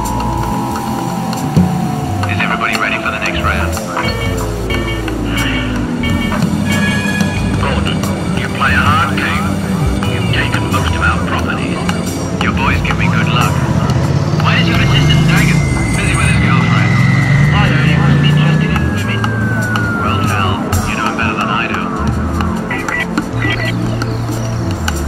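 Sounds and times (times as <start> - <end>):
high whine sinking in pitch: 0.0 - 24.9
passing traffic: 0.0 - 25.0
people's voices: 0.0 - 25.0.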